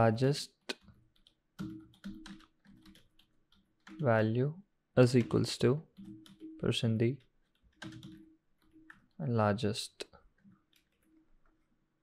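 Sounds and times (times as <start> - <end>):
computer keyboard typing: 1.1 - 4.1, 5.0 - 9.2, 10.4 - 11.7.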